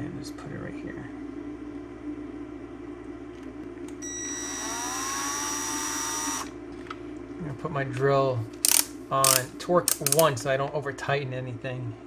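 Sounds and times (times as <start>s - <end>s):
cordless drill motor whining: 4.0s - 6.6s.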